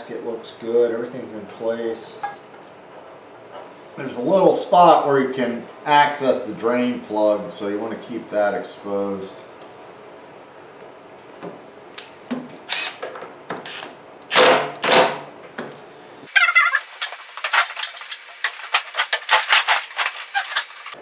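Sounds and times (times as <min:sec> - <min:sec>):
impact driver bursts: 0:13.6 - 0:15.2
sharp clicks and rattles: 0:16.9 - 0:21.0.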